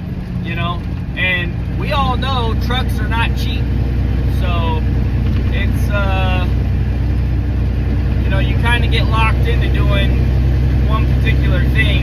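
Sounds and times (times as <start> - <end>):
diesel truck engine droning: 0.0 - 12.0
man speaking: 8.2 - 10.2, 10.9 - 12.0.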